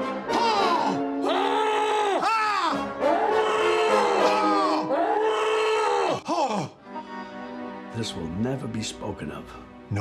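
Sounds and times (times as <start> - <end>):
man yelling drawn-out cries: 0.4 - 6.8.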